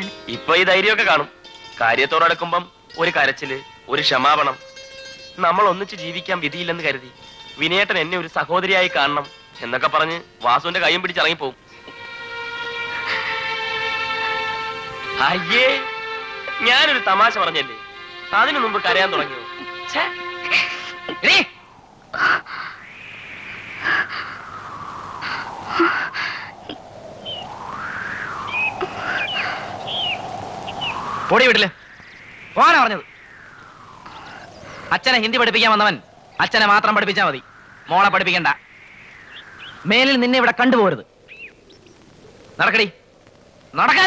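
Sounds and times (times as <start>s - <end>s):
short bird chirps: 22.6s - 25.4s, 27.2s - 27.6s, 28.4s - 34.9s, 37.3s - 40.2s, 41.2s - 42.1s.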